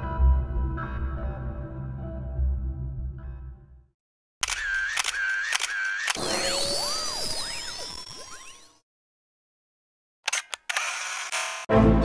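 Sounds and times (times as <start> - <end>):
background music: 0.0 - 3.8, 11.7 - 12.0
sharp click: 4.4 - 6.3, 10.3 - 11.7
electronic logo sound effect: 6.2 - 8.8
high warbling tone: 6.2 - 8.8.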